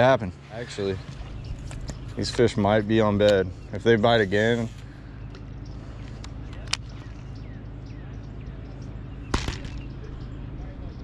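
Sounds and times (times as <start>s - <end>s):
steady low hum: 0.0s - 11.0s.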